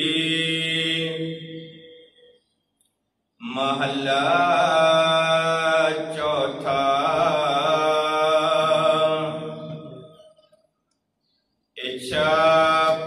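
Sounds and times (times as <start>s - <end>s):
man chanting: 0.0s - 1.9s, 3.4s - 10.1s, 11.8s - 13.0s.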